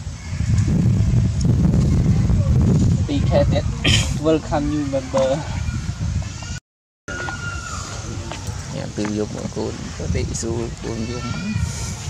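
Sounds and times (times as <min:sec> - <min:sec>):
people talking: 0:02.1 - 0:05.6, 0:08.0 - 0:11.8.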